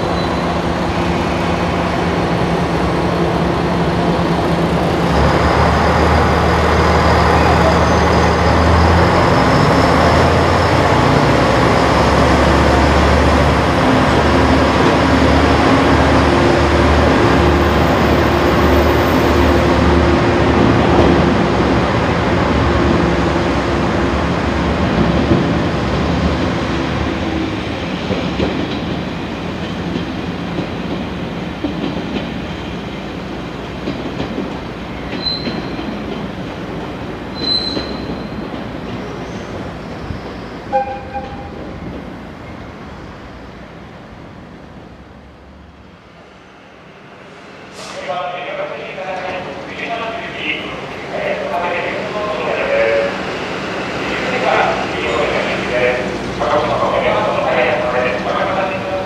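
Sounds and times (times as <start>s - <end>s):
high wheel squeals: 7.1s - 10.7s, 35.0s - 35.9s, 37.3s - 38.4s.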